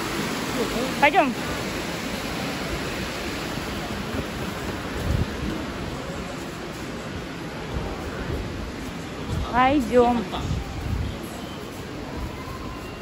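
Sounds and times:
fountain water jets splashing: 0.0s - 13.0s.

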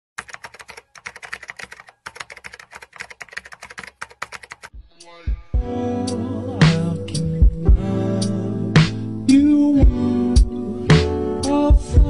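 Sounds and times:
rapid keyboard typing clicks: 0.2s - 4.7s.

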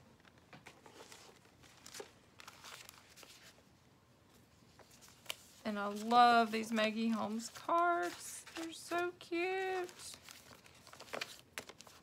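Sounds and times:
paper rustling and crinkling: 0.2s - 3.7s, 4.3s - 12.0s.

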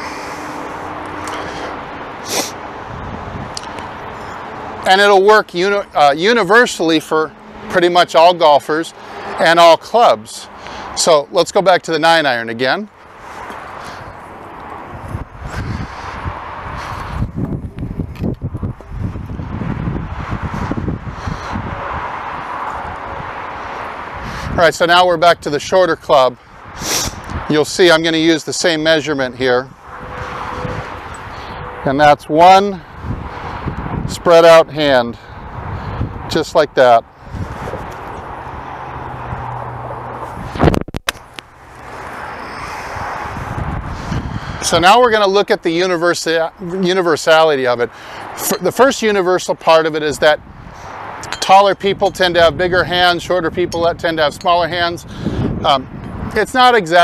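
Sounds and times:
wind gusting on microphone: 0.0s - 7.8s, 13.1s - 45.5s, 47.9s - 57.0s.

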